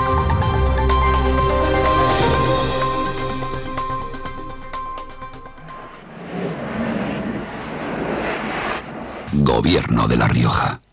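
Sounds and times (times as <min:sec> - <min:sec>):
steady rushing rumbling noise: 0:03.6 - 0:10.8.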